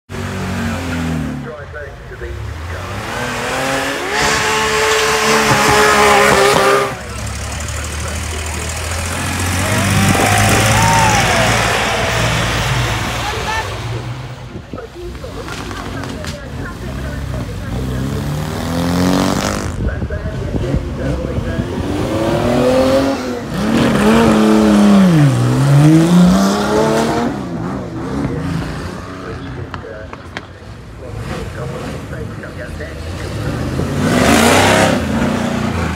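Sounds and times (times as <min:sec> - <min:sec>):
cars accelerating hard: 0:00.1 - 0:35.9.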